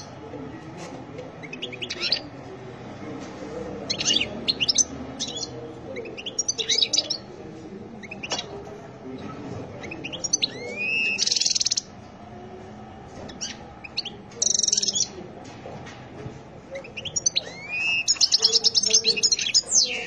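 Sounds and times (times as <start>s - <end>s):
goldfinch singing: 1.4s - 2.3s, 3.9s - 7.2s, 9.8s - 11.9s, 13.3s - 15.2s, 16.8s - 20.0s.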